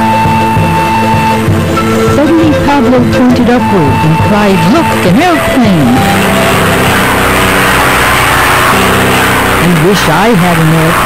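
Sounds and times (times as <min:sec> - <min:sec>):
propeller airplane engine drone: 0:00.0 - 0:11.0.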